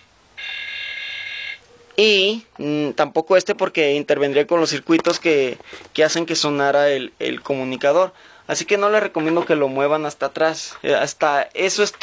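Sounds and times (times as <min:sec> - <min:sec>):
toy laser buzzing tone: 0:00.4 - 0:01.6.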